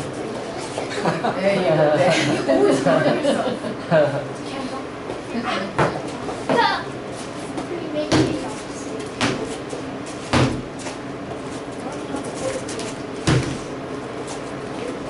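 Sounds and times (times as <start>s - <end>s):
sharp thuds on padded floor: 8.1s - 8.5s, 9.2s - 9.6s, 10.3s - 10.8s, 13.2s - 13.7s.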